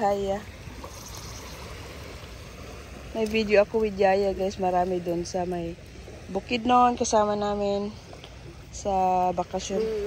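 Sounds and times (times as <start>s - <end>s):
small waves washing over reef: 0.0s - 10.0s.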